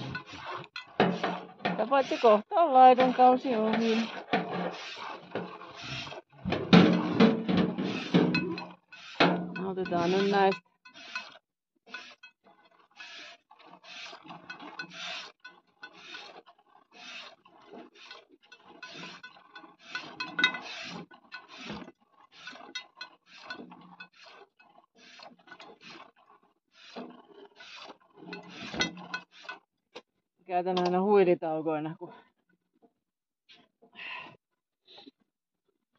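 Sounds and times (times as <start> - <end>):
milk squirting into a pail: 3.0 - 10.3, 13.0 - 29.6.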